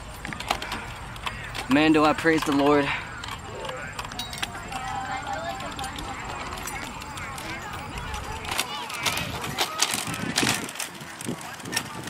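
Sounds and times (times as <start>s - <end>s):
clicks and rattles on paved path: 0.0s - 12.0s
faint distant voices: 0.0s - 12.0s.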